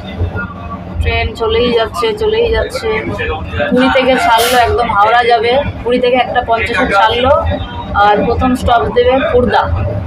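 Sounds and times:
people talking: 0:00.0 - 0:10.0
train running rumble: 0:00.0 - 0:10.0.

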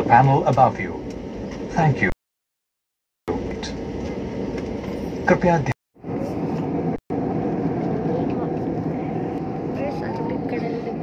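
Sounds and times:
jet engine roar in cabin: 0:00.0 - 0:02.2, 0:03.3 - 0:11.0.

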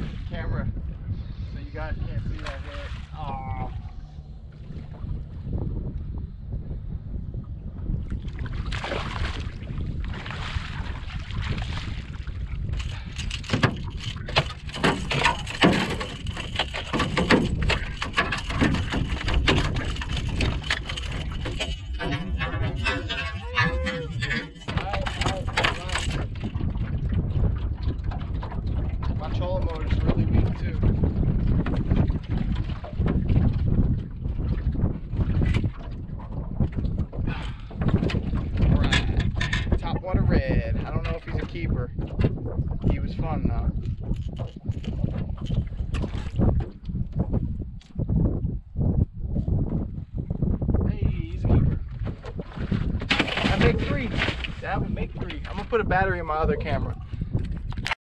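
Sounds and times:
wind buffeting microphone: 0:00.0 - 0:58.0
fishing gear knocks and handling: 0:12.6 - 0:26.6, 0:37.4 - 0:39.8, 0:43.8 - 0:46.9.

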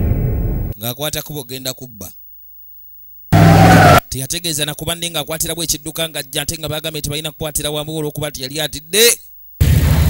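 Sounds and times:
car tyres screeching: 0:03.4 - 0:04.0.

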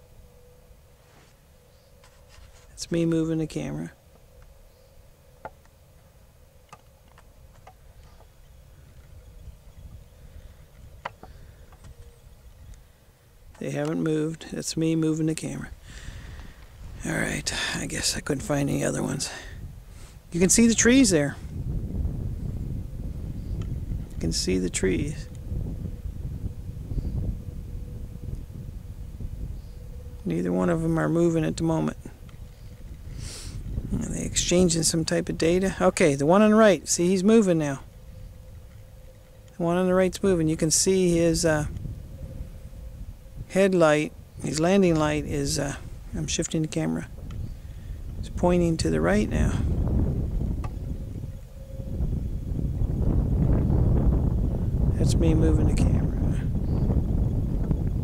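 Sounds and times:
faint steady hum: 0:00.0 - 0:58.0
low steady rumble: 0:00.0 - 0:58.0
wind buffeting microphone: 0:01.9 - 0:58.0.

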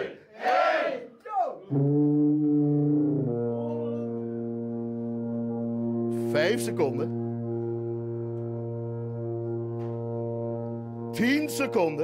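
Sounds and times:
sousaphone long low note: 0:01.7 - 0:12.0.

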